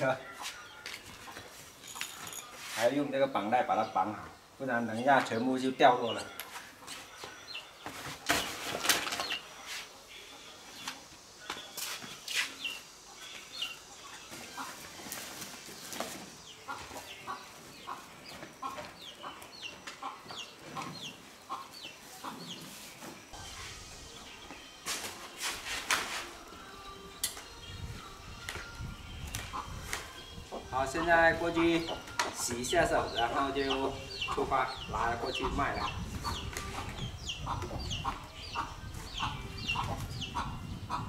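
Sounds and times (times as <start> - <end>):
chickens clucking: 4.0 - 24.5, 27.7 - 41.0.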